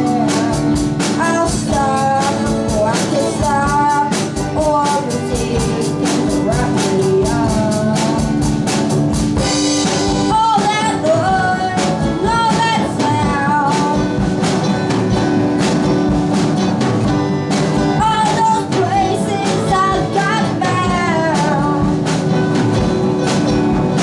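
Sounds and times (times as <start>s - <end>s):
person singing: 0.0s - 14.8s, 17.8s - 22.4s
drum kit beat: 0.0s - 24.0s
strummed acoustic guitar: 0.0s - 24.0s.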